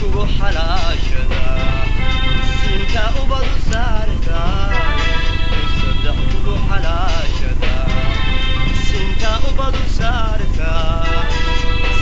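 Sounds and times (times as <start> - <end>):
low accompaniment: 0.0 - 12.0
person singing: 0.0 - 12.0.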